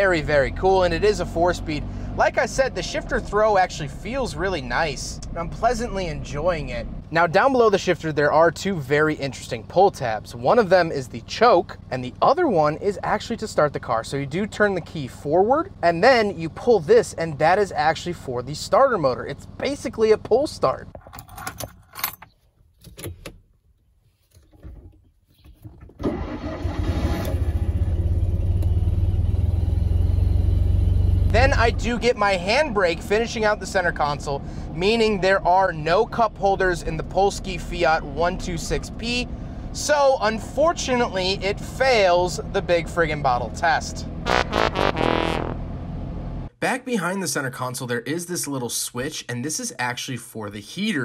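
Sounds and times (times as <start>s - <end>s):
small car engine starting and running: 0.0s - 22.0s, 25.6s - 46.5s
synthesized fail sound effect: 44.2s - 45.6s.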